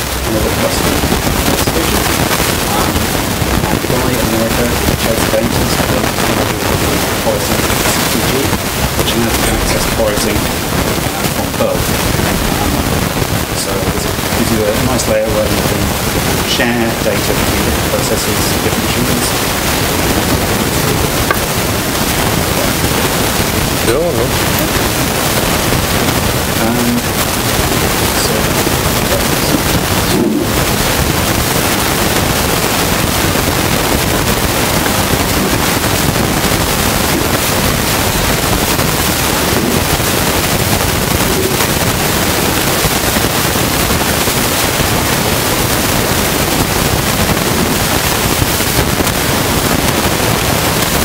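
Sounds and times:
loud steady hiss: 0:00.0 - 0:51.0.

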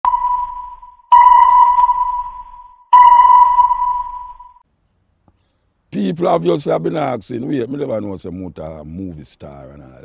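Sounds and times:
sonar pings: 0:00.0 - 0:04.6.

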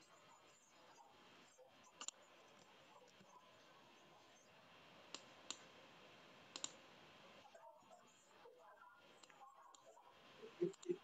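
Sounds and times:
computer mouse clicks: 0:01.9 - 0:03.2, 0:05.1 - 0:05.7, 0:06.5 - 0:06.8, 0:10.6 - 0:11.0.

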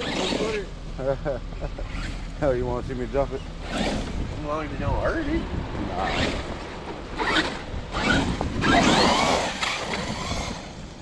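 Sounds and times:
rc truck driving over wood chips: 0:00.0 - 0:00.8, 0:01.6 - 0:11.0.

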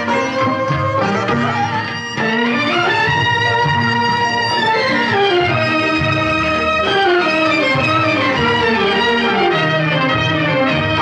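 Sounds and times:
film song with busy accompaniment: 0:00.0 - 0:11.0.

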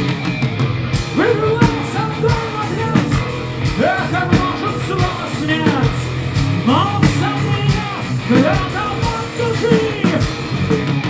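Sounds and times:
bass guitar: 0:00.0 - 0:11.0
distorted electric guitars: 0:00.0 - 0:11.0
drums: 0:00.0 - 0:11.0
person singing: 0:01.2 - 0:03.2, 0:03.8 - 0:10.5.

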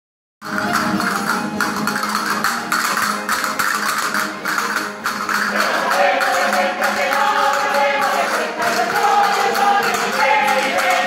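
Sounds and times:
folk music with plucked strings: 0:00.4 - 0:11.0.

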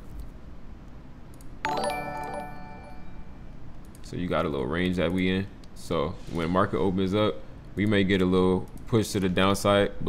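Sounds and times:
bell-like notification chime: 0:01.7 - 0:03.4.

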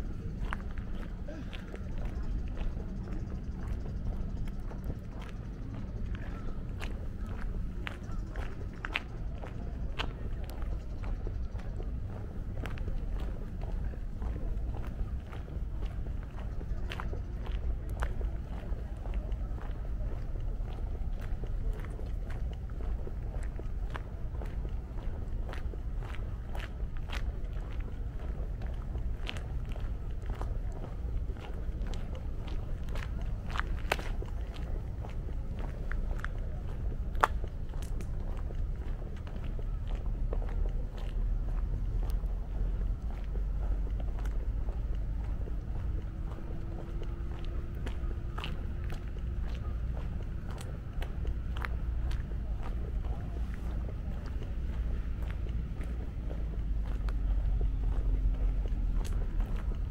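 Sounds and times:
distant voices: 0:00.0 - 0:59.9
footsteps on paved path: 0:00.0 - 0:59.9.

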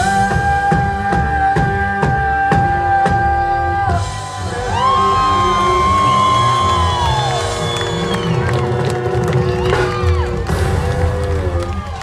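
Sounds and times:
live reggae band music: 0:00.0 - 0:12.0
crowd cheering: 0:03.6 - 0:12.0.

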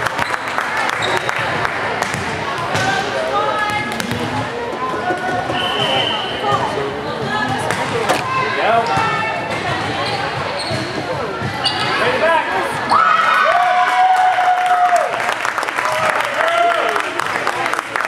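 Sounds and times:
volleyball smacks and bounces: 0:02.0 - 0:03.1, 0:03.7 - 0:04.4.

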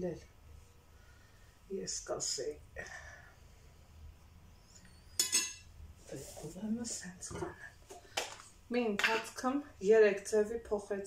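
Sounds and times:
kitchenware clinking: 0:05.1 - 0:05.7.

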